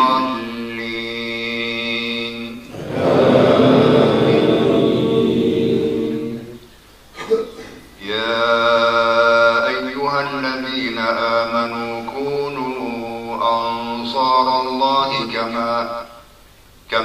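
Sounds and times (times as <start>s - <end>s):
man chanting recitation: 0.0s - 6.5s, 8.0s - 16.2s.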